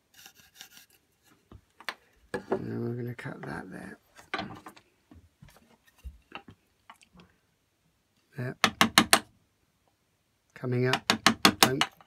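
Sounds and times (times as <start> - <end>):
mallet tapping wood chisel: 8.6 - 9.3, 10.9 - 12.0.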